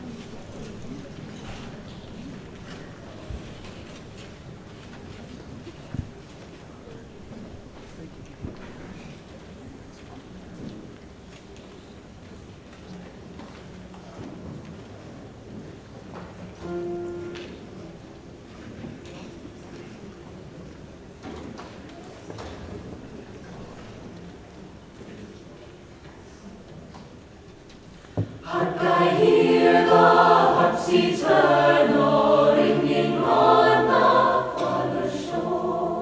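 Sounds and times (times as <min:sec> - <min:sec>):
large hall room noise: 0:00.0 - 0:36.0.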